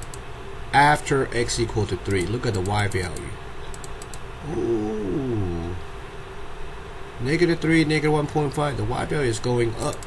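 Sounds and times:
faint room hum: 0:00.0 - 0:10.0
man's drawn-out falling voice: 0:04.4 - 0:05.8.

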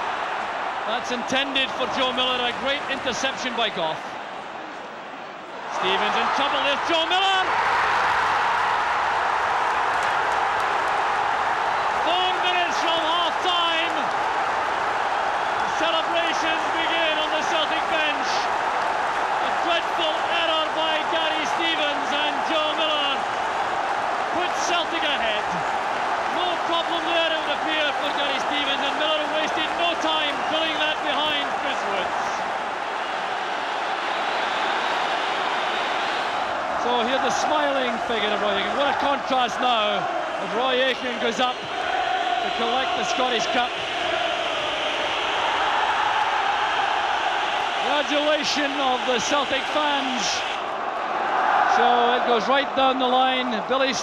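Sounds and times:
stadium crowd cheering and singing: 0:00.0 - 0:54.0.

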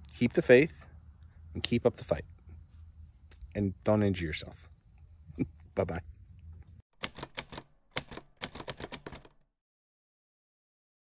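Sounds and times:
sharp clicks in clusters: 0:07.0 - 0:09.5.

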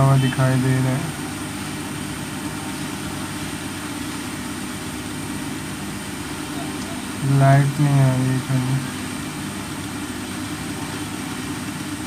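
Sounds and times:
high-pitched whine: 0:00.0 - 0:04.1, 0:06.4 - 0:09.0
low mechanical hum: 0:00.0 - 0:12.0.

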